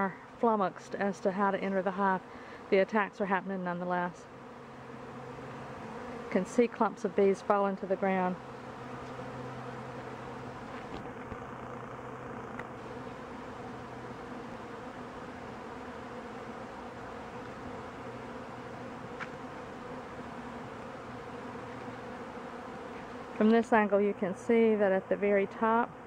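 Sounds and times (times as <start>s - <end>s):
honey bees buzzing: 0.0s - 26.0s.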